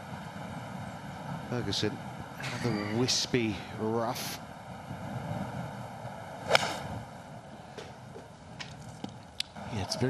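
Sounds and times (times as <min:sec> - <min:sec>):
steady outdoor background: 0:00.0 - 0:10.0
golf club striking ball: 0:06.4 - 0:07.0.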